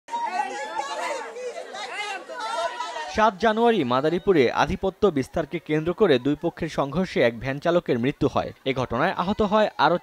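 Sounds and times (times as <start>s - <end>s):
murmur of overlapping voices: 0.1s - 10.0s.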